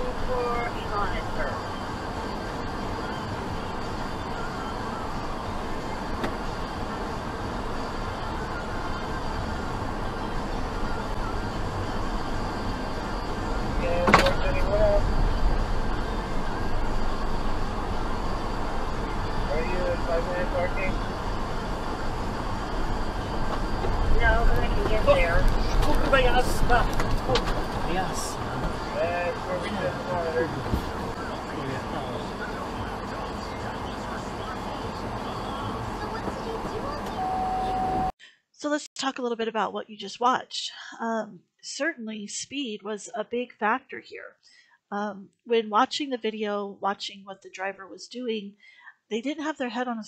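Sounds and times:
steady rumbling noise: 0.0 - 38.1
road and engine noise: 0.0 - 38.2
steady beep tone: 28.2 - 38.2.

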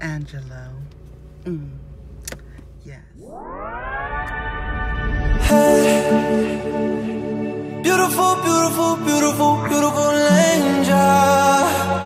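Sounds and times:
synthesizer tone sweeping up: 3.2 - 7.8.

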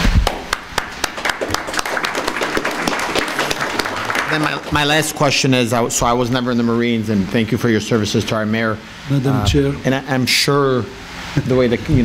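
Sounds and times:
people applauding: 0.0 - 5.7.

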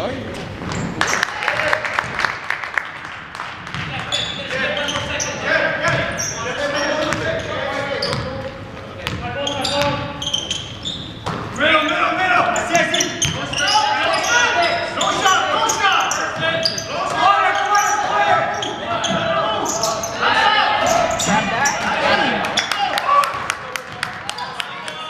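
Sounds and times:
overlapping voices in gym hall: 0.8 - 6.1, 13.6 - 25.0.

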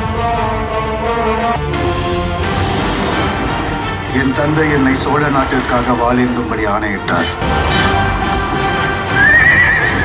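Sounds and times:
dramatic music: 0.0 - 10.0
horse whinnying: 9.0 - 10.0.

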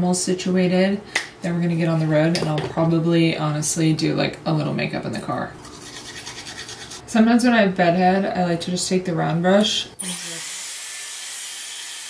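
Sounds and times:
hair styler blowing air: 10.0 - 12.0.

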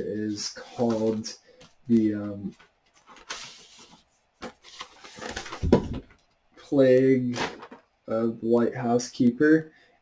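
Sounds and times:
cardboard rustling: 2.5 - 6.2.

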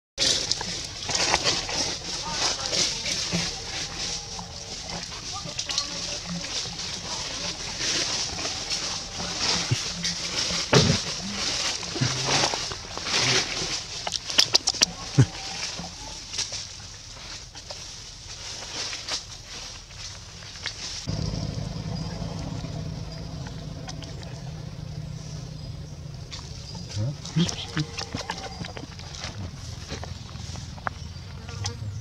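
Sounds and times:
clicks and rustles: 0.2 - 31.8
steady low hum: 21.1 - 32.0.

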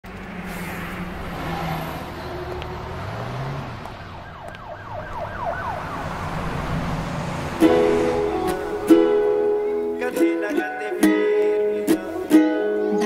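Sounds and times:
wailing yelp siren: 3.8 - 7.0.

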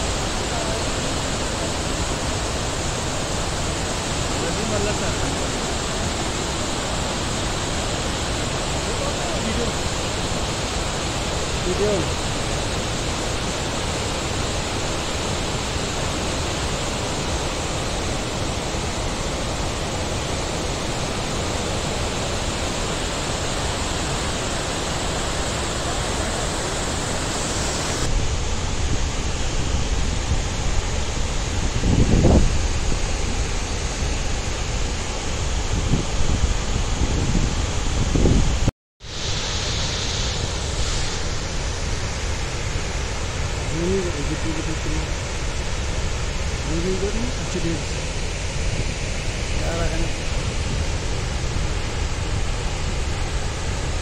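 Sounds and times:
waterfall rushing: 0.0 - 54.0
wind buffeting microphone: 27.8 - 38.7.

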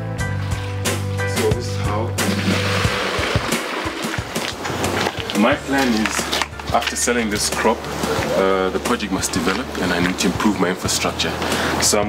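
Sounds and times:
background music: 0.0 - 12.0
water splashing and pouring: 2.2 - 6.6.

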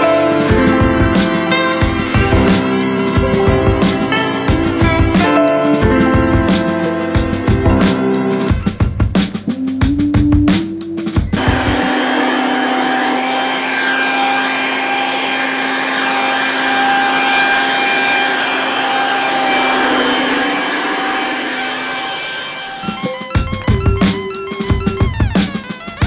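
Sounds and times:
electric tool whining: 11.4 - 24.0.

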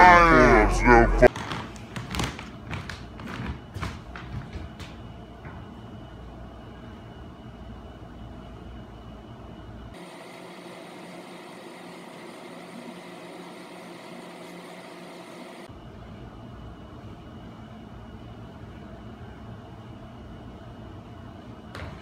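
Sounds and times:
room tone hiss and hum: 0.0 - 22.0.

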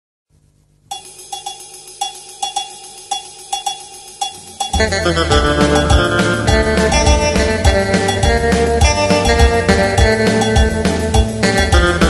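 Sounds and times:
cowbell struck in a pattern: 0.9 - 12.0.

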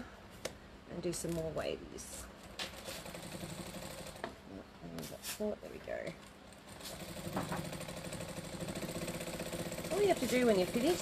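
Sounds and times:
sewing machine stitching rapidly: 2.7 - 4.2, 6.7 - 11.0.

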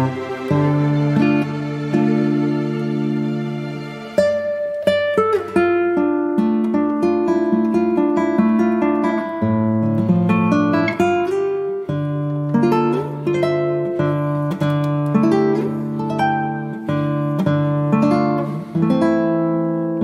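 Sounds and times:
acoustic guitar music: 0.0 - 20.0.

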